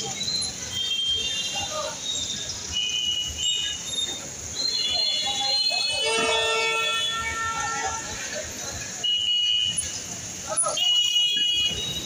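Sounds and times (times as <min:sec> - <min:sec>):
street noise: 0:00.0 - 0:12.0
long multi-pitch horn tone: 0:04.8 - 0:08.4.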